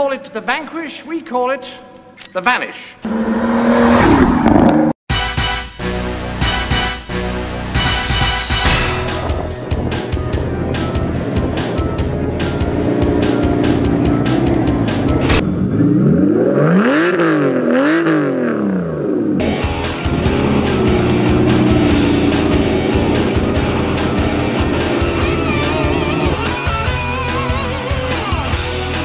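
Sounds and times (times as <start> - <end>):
car engine revving: 3.0 - 5.0, 9.0 - 29.0.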